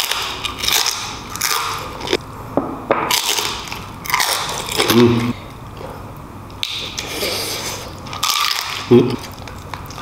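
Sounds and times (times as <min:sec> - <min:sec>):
crispy skin crunching when chewed: 0:00.0 - 0:02.2, 0:03.1 - 0:05.4, 0:06.6 - 0:10.0.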